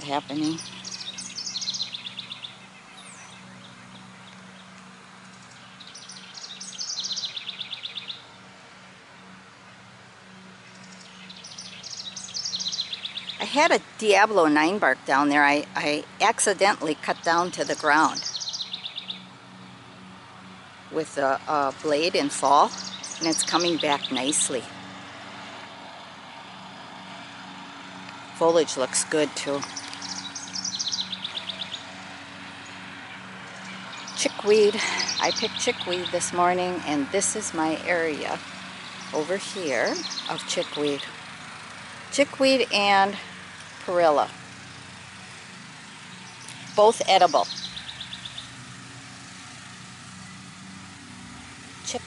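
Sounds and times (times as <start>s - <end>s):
distant engine hum: 0.0s - 52.0s
faint outdoor background noise: 0.0s - 52.0s
songbird singing: 0.0s - 52.0s.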